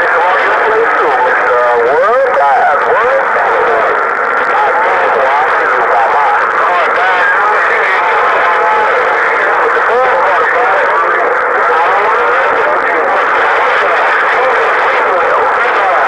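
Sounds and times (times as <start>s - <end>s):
radio speech with noise: 0.0s - 16.0s.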